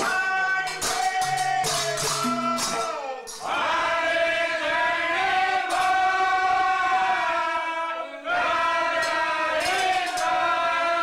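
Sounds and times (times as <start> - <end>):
men singing devotional song: 0.0 - 11.0.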